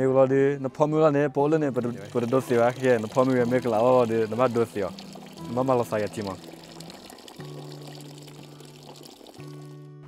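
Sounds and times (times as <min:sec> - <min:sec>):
music of held low notes: 0:00.0 - 0:10.0
water pouring into a bucket: 0:01.7 - 0:10.0.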